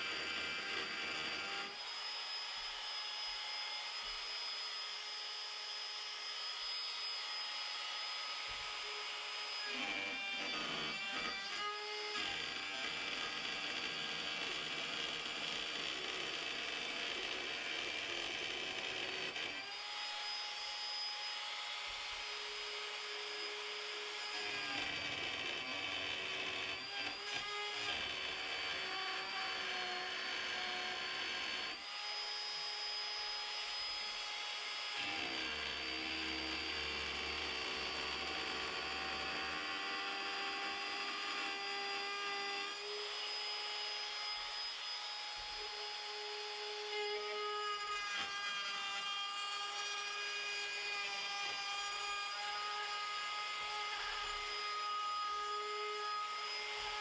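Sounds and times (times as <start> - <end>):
router whining: 0.0 - 57.0.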